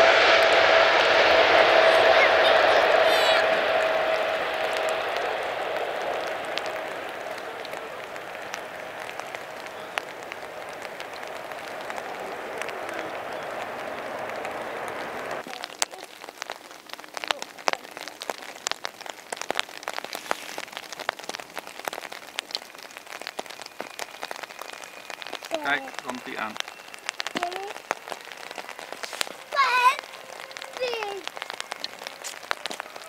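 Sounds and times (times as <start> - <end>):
distant jet airliner roar: 0.0 - 15.8, 18.0 - 33.0
steady rain: 0.0 - 33.0
raindrop taps near microphone: 3.6 - 33.0.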